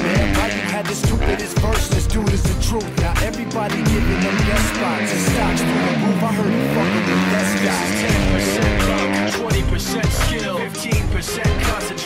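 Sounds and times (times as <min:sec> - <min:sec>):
dirt bike engine revving: 0:00.0 - 0:12.0
rap backing music: 0:00.0 - 0:12.0.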